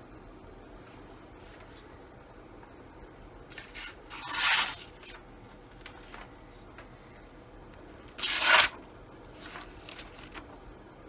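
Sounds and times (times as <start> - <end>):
knife slicing paper: 3.5 - 5.2, 8.1 - 8.8
paper rustle: 9.4 - 10.6.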